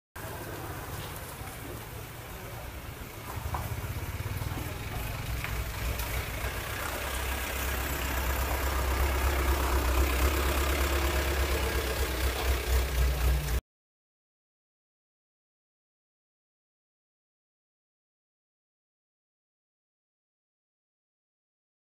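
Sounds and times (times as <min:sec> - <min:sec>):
vehicle engine idling: 0:00.2 - 0:13.6.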